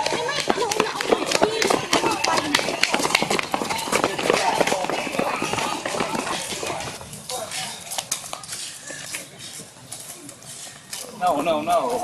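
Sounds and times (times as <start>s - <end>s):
young people shouting: 0.0s - 7.0s
running footfalls: 0.0s - 12.0s.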